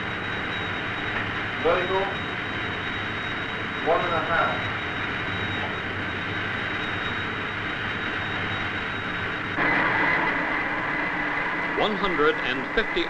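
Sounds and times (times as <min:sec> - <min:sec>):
lower whine: 0:00.0 - 0:13.0
rushing air with high whine: 0:09.6 - 0:13.0.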